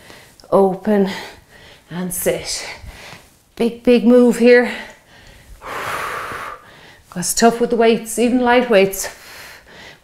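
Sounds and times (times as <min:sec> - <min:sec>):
woman breathing heavily: 0:01.0 - 0:01.9, 0:02.5 - 0:03.4, 0:04.6 - 0:07.2, 0:09.0 - 0:10.0.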